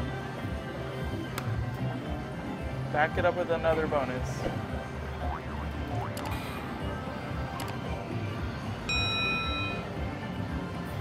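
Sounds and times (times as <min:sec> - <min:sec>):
electronic chime: 0:08.9 - 0:09.9
slot machine game music: 0:08.9 - 0:10.2.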